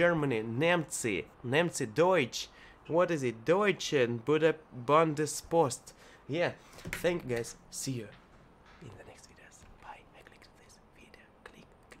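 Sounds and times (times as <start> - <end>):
man whispering: 8.8 - 12.0.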